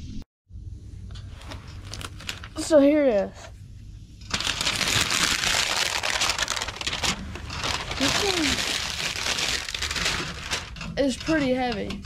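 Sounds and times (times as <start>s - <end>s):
plastic wrapping crinkling: 1.3s - 2.8s, 4.3s - 11.2s.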